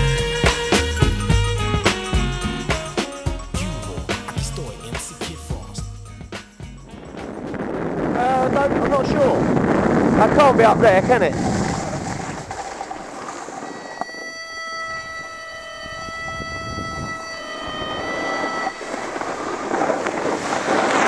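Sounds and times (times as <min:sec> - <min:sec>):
wind rushing over microphone: 0:06.7 - 0:21.0
steady held tone: 0:13.0 - 0:19.7.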